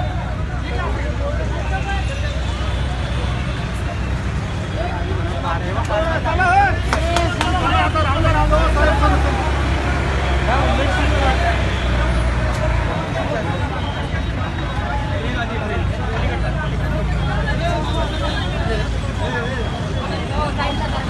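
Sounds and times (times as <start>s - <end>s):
people talking indistinctly: 0.0s - 21.0s
traffic rumble: 0.0s - 21.0s.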